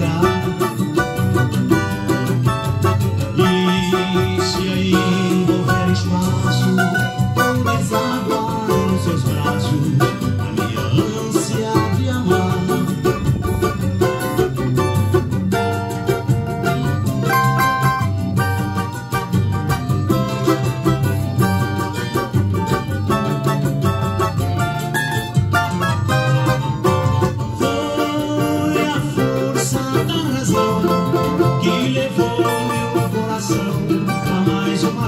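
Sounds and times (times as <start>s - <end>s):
backing track with bass line: 0.0s - 35.0s
fast plucked string melody: 0.0s - 35.0s.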